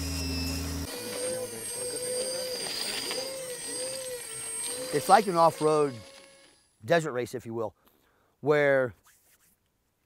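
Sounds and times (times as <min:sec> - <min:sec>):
toy car electric motor whining: 0:00.0 - 0:06.8
thin high-pitched whine: 0:00.0 - 0:06.9.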